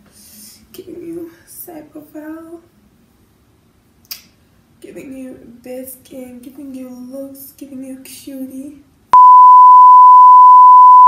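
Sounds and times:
steady test tone beep: 0:09.2 - 0:11.0.

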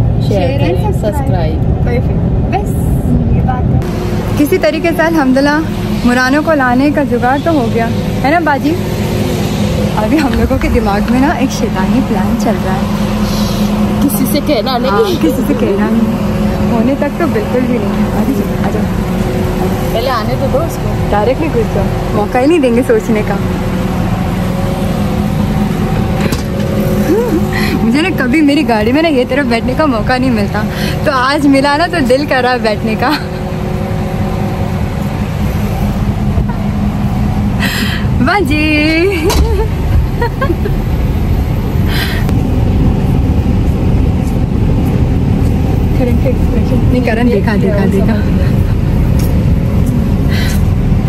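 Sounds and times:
car road and engine noise: 0:00.0 - 0:51.0
woman's voice: 0:00.2 - 0:01.6, 0:04.3 - 0:08.8, 0:09.9 - 0:19.0, 0:27.1 - 0:33.4, 0:38.0 - 0:39.7, 0:45.9 - 0:49.4
woman laughing: 0:14.8 - 0:16.0, 0:26.9 - 0:28.2, 0:33.0 - 0:33.5, 0:36.4 - 0:36.9, 0:38.9 - 0:41.0, 0:48.0 - 0:49.4.

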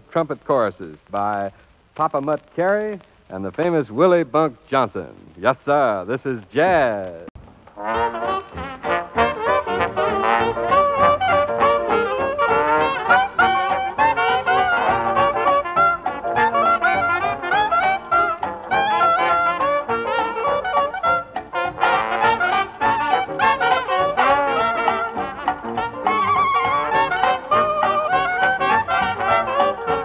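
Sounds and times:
jazz band playing: 0:05.7 - 0:30.0
trumpet: 0:07.7 - 0:30.0
trombone: 0:07.8 - 0:30.0.

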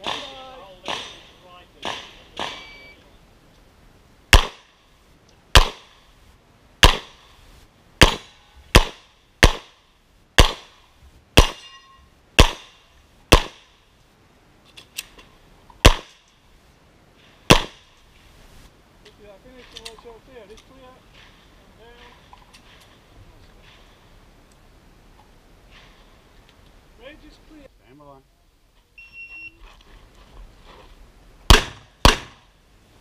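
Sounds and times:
pistol shots: 0:00.0 - 0:02.7, 0:04.3 - 0:04.7, 0:05.5 - 0:05.9, 0:06.8 - 0:07.2, 0:08.0 - 0:09.8, 0:10.4 - 0:10.8, 0:11.4 - 0:11.6, 0:12.4 - 0:13.6, 0:15.8 - 0:16.2, 0:17.5 - 0:17.8, 0:31.5 - 0:32.4.

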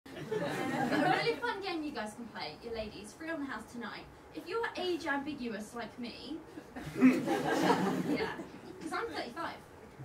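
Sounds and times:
woman talking into microphone: 0:08.1 - 0:09.6.

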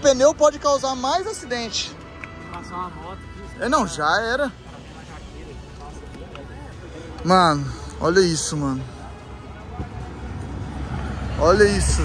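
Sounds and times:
faint background chatter: 0:01.5 - 0:12.0.

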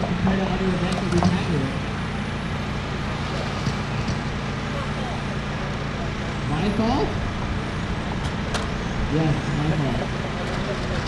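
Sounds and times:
faint voices: 0:00.0 - 0:08.2, 0:08.8 - 0:11.0
constant low hum: 0:00.0 - 0:11.0.

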